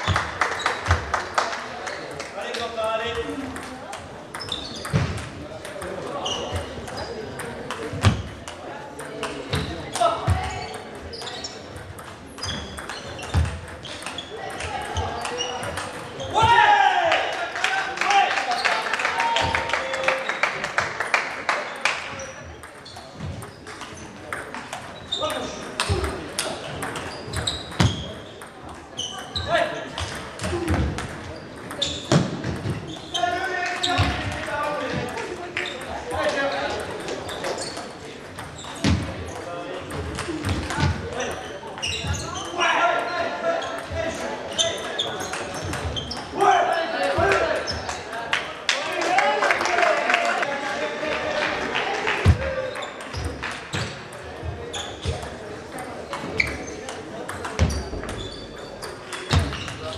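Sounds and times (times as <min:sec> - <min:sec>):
table tennis balls clicking: 0:03.1 - 0:16.1, 0:21.8 - 0:28.8, 0:33.6 - 0:41.4, 0:52.8 - 0:59.9.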